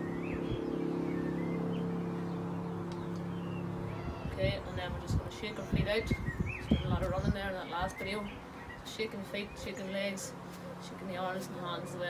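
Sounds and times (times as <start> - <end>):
mechanical motor hum: 0.0 - 7.4.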